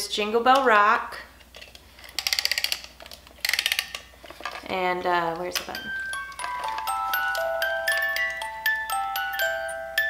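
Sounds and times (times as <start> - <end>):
wind-up ratcheting clicks: 2.1 - 4.1.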